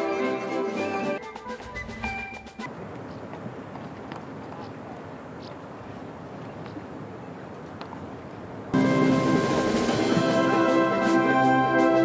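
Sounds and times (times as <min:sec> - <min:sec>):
brass band playing slow chords: 0:08.8 - 0:12.0.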